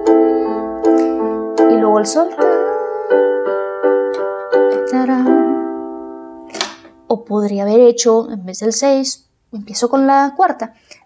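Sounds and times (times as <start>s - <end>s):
electronic keyboard playing chords: 0.0s - 7.1s.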